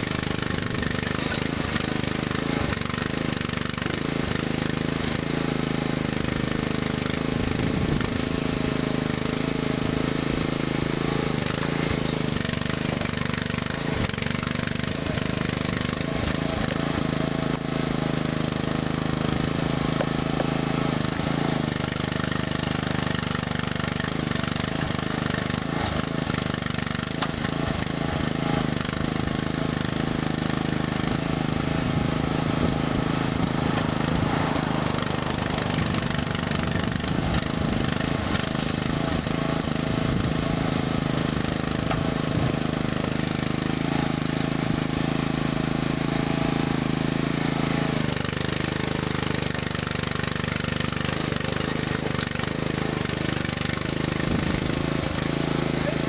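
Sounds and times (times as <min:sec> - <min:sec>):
engine running steadily: 0:00.0 - 0:56.0.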